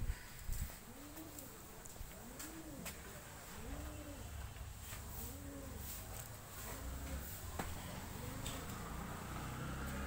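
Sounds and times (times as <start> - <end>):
faint bird cooing: 0.0 - 4.5, 5.1 - 6.1, 6.7 - 9.0.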